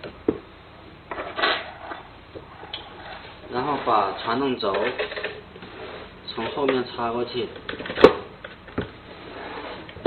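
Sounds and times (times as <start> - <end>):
scraping rustle: 1.2 - 6.1.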